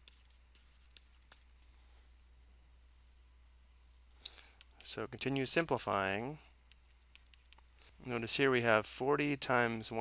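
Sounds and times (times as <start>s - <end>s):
stylus clicking on tablet: 0.0s - 1.7s, 4.0s - 7.8s
person breathing: 1.6s - 2.2s, 4.1s - 4.8s
person speaking: 4.0s - 10.0s.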